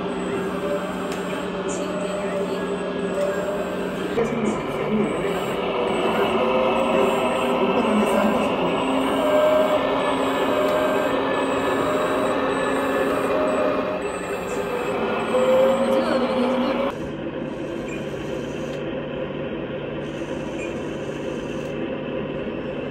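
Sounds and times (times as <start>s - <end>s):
steady low hum: 0.0s - 22.9s.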